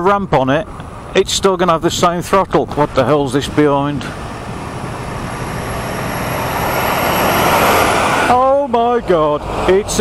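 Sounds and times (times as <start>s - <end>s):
lorry engine overtaking: 0.2s - 10.0s.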